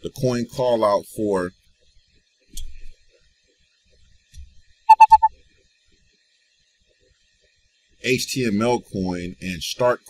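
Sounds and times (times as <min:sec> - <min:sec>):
short loud beeps: 0:04.9 - 0:05.3.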